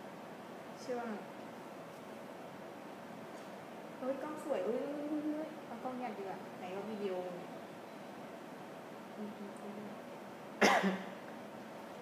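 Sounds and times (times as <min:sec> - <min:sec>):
faint murmur of voice: 0:09.1 - 0:10.0
person coughing: 0:10.6 - 0:11.1.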